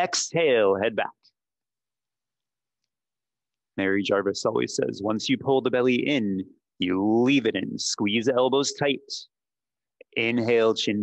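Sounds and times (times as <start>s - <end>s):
man speaking: 0.0s - 1.4s, 3.7s - 9.4s, 10.0s - 11.0s.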